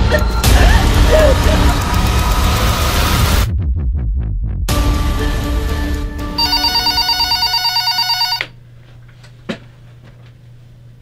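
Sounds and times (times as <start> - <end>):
telephone ringing with electronic trill: 6.4 - 8.5.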